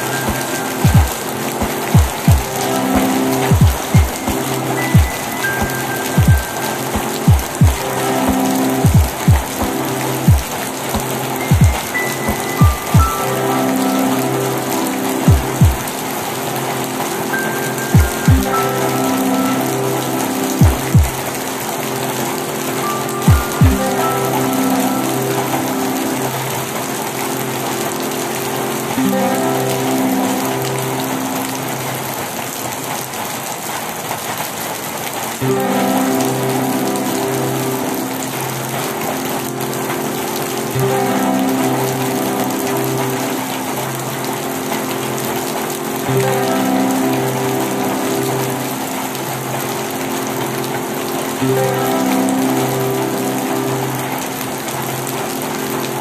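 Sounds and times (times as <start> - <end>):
slow melody of held notes: 0.0 - 33.8, 35.3 - 56.0
rain falling on foliage: 0.0 - 56.0.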